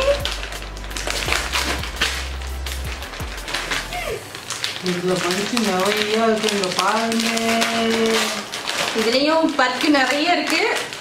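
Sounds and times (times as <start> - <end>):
plastic wrappers crinkling: 0.0 - 11.0
wrapper ripping snap: 0.0 - 11.0.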